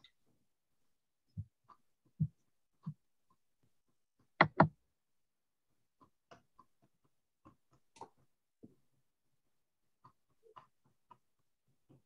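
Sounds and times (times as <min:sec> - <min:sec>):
paintbrush tapping on canvas: 0:04.4 - 0:04.7.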